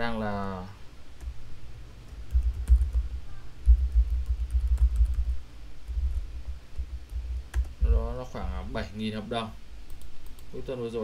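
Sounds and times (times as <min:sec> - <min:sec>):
typing on computer keyboard: 0:02.0 - 0:07.8.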